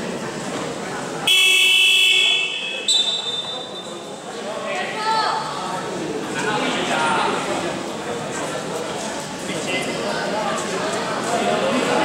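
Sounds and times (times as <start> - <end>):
murmur of voices in a gym: 0.0 - 12.0.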